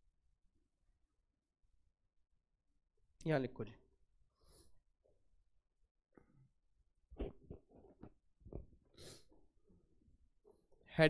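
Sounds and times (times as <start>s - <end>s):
short sharp breath: 4.3s - 4.9s, 8.9s - 9.4s.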